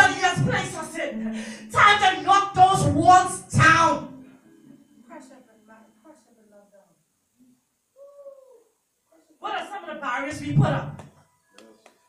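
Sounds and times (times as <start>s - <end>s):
person humming: 8.0s - 8.7s.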